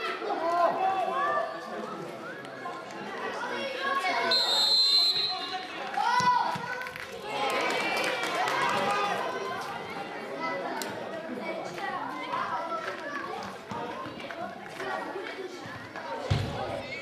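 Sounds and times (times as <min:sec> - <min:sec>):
referee's whistle blast: 0:04.3 - 0:05.6.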